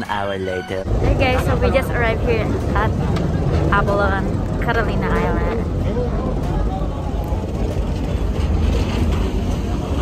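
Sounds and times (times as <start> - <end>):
faint passenger voices: 0.6 - 10.0
ferry diesel engines rumbling: 0.8 - 10.0.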